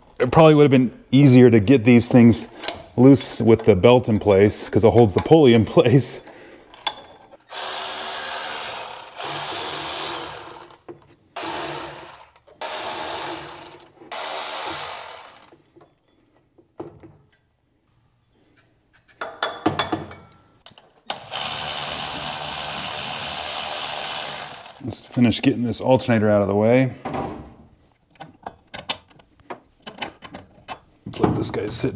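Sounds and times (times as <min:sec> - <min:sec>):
electric ratchet whirring: 0:07.5 - 0:10.8, 0:11.4 - 0:15.5, 0:21.1 - 0:24.8.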